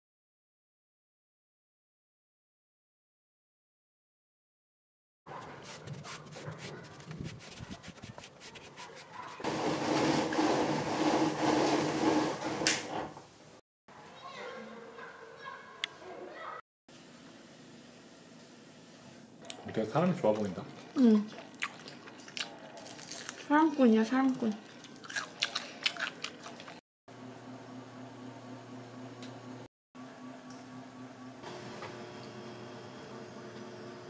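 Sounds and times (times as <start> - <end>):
crunchy food being chewed: 20.3 - 23.5, 24.3 - 26.8.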